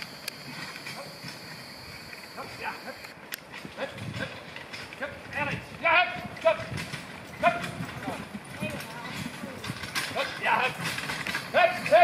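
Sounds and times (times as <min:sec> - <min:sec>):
carriage wheels on sandy track: 0:00.0 - 0:12.0
horse hoofbeats: 0:00.0 - 0:12.0
loud shouted calls: 0:11.4 - 0:12.0.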